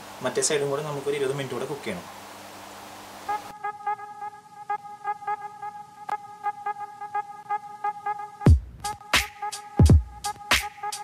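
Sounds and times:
faint hum: 0:00.0 - 0:08.8
steady low hiss: 0:00.0 - 0:11.0.

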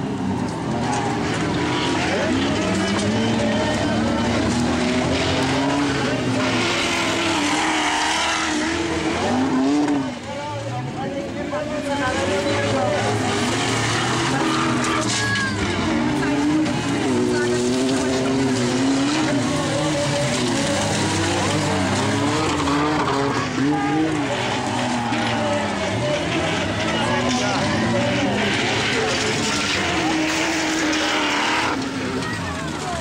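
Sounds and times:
racing car engines revving: 0:00.0 - 0:33.0.

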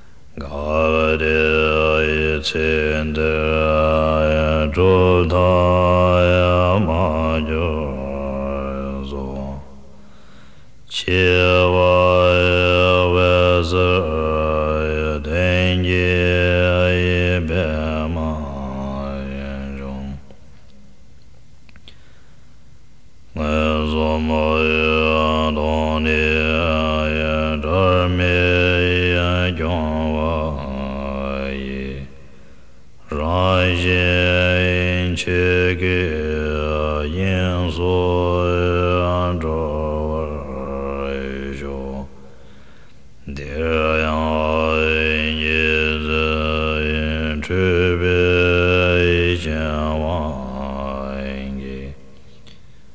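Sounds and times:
deep voice chanting a low tone: 0:00.4 - 0:09.8, 0:10.9 - 0:20.4, 0:23.4 - 0:32.2, 0:33.0 - 0:42.2, 0:43.2 - 0:52.0.

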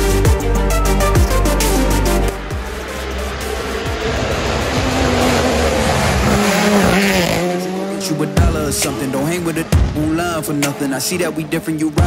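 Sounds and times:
rally car engine passing: 0:02.4 - 0:12.0
tyre noise on wet road: 0:02.6 - 0:08.6.

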